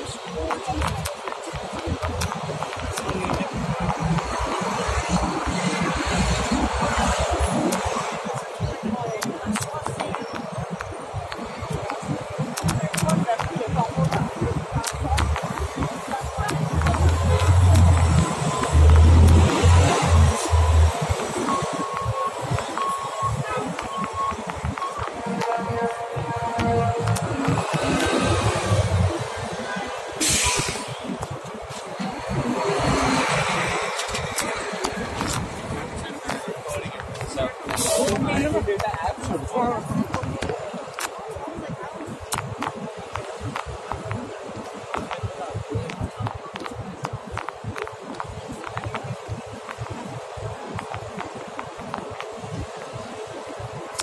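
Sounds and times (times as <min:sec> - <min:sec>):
traffic running: 0:00.0 - 0:54.0
sharp ticks: 0:09.2 - 0:29.2.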